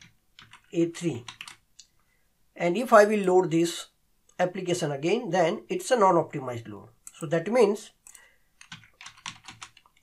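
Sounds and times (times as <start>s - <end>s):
computer keyboard typing: 0.0s - 1.6s, 8.0s - 10.0s.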